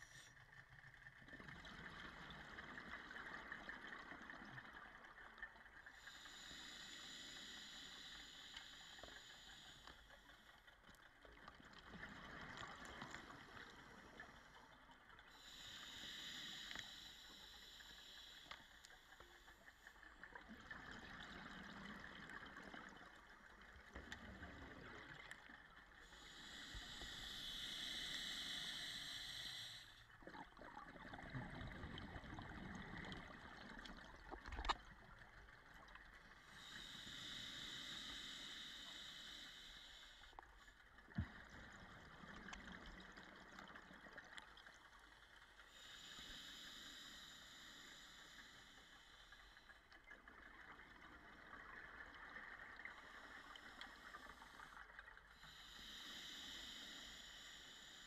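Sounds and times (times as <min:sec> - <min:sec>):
scuba regulator breathing hiss: 0:05.9 - 0:10.5, 0:15.3 - 0:20.0, 0:26.0 - 0:30.0, 0:36.5 - 0:40.4, 0:45.7 - 0:49.8, 0:53.0 - 0:58.0.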